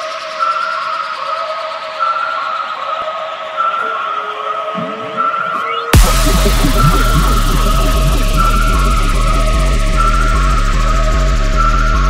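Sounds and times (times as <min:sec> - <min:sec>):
sustained synth tones: 0:01.6 - 0:12.0
rising synth glides: 0:03.8 - 0:12.0.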